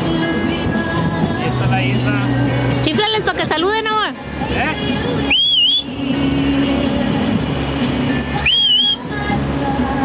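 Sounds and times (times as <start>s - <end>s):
music: 0.0s - 10.0s
person whistling loudly: 5.3s - 5.9s, 8.4s - 9.0s.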